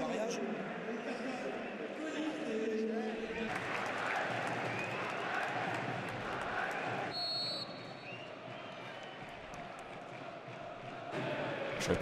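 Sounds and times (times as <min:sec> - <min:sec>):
stadium crowd chanting: 0:03.2 - 0:12.0
referee's whistle blast: 0:07.1 - 0:08.2.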